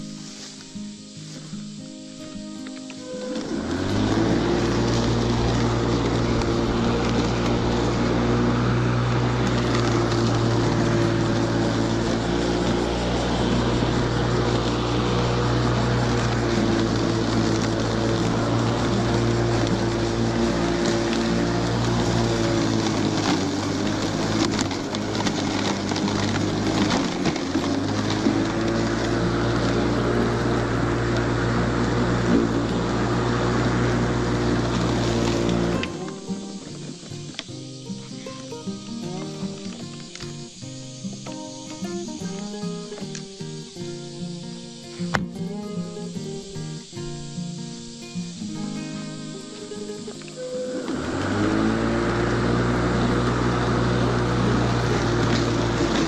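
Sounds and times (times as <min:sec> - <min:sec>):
electric lawn mower humming: 0:00.0 - 0:56.0.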